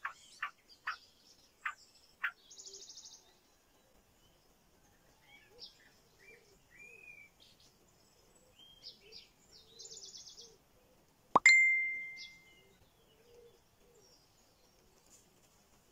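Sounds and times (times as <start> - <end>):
wild bird chirps: 0.0 - 3.4, 5.2 - 11.0
bell-like ding: 11.4 - 12.5
bird trill: 11.4 - 12.8.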